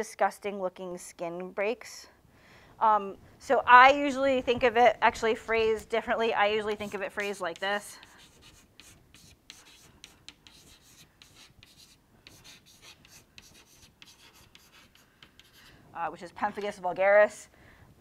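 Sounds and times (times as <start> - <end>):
pen scratching while writing: 6.7 - 15.7.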